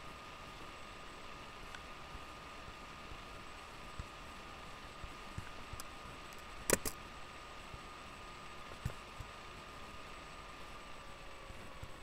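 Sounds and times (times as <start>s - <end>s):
faint thin whine: 0.0s - 12.0s
steady background hiss: 0.0s - 12.0s
sharp clicks: 6.7s - 7.0s.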